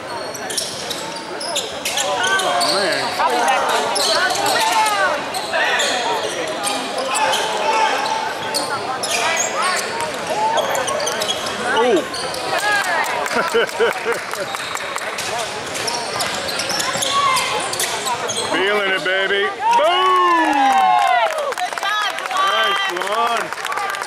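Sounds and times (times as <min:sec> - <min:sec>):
sneaker squeaks: 0:00.0 - 0:12.7, 0:14.6 - 0:19.3
voices echoing in hall: 0:00.0 - 0:19.9.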